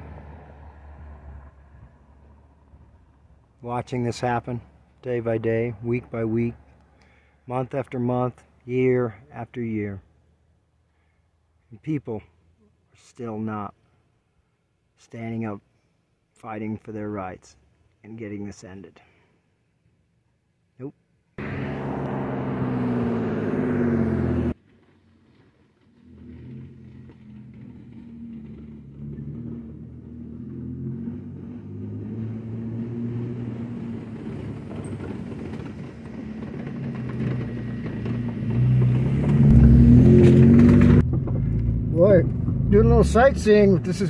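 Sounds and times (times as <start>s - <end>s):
car engine on dirt road: 0.0s - 10.1s, 21.4s - 44.0s.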